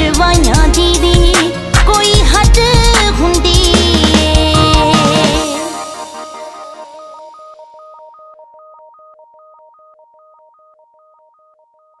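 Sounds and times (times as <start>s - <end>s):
song music: 0.0s - 8.2s.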